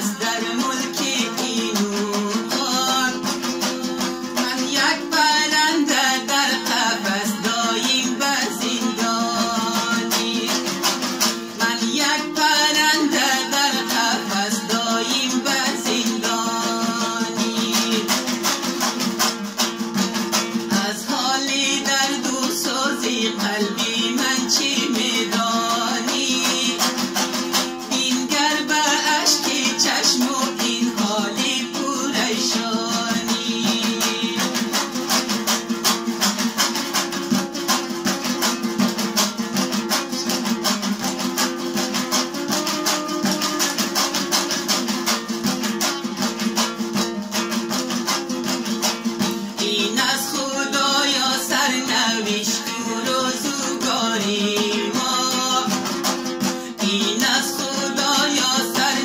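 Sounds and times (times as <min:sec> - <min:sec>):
lute strummed fast: 0:00.0 - 0:59.0.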